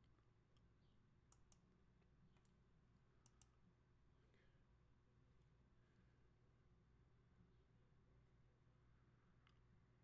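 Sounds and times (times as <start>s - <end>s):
faint sharp clicks: 3.2s - 3.5s.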